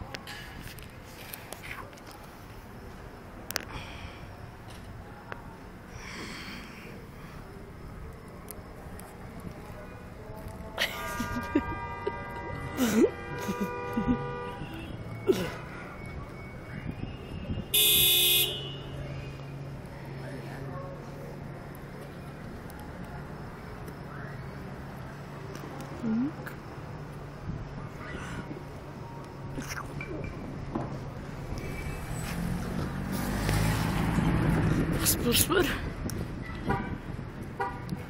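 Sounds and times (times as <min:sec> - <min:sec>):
street traffic hum: 0:00.0 - 0:38.0
car horn blast: 0:11.1 - 0:15.0, 0:17.7 - 0:18.9.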